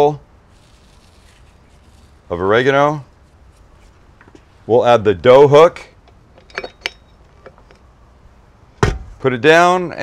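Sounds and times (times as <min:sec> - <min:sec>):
faint handling ticks: 0:00.5 - 0:04.5.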